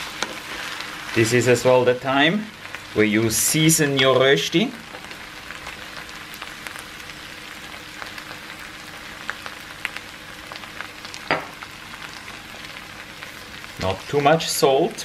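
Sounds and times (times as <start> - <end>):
food sizzling in a pan: 0.0 - 15.0.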